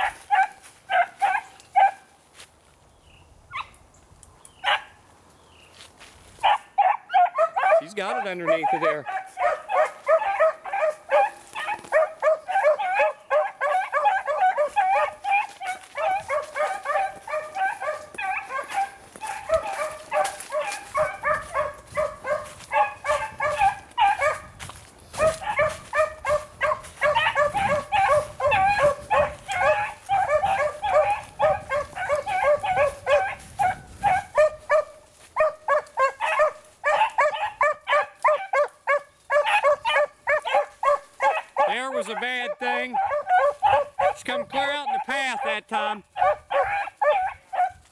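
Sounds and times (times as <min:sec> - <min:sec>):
hounds baying and yelping: 0:00.0 - 0:02.1, 0:04.6 - 0:05.0, 0:06.4 - 0:47.9.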